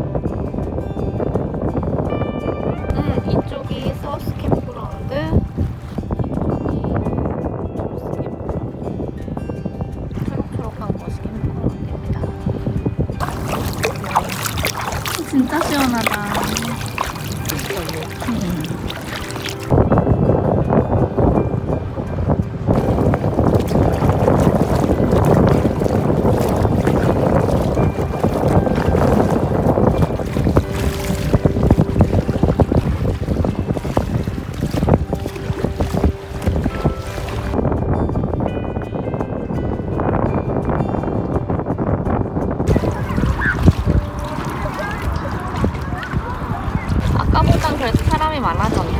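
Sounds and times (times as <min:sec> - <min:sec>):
wind buffeting microphone: 0:00.0 - 0:48.9
water slapping against boat: 0:09.8 - 0:20.0, 0:21.4 - 0:37.9, 0:42.5 - 0:48.9.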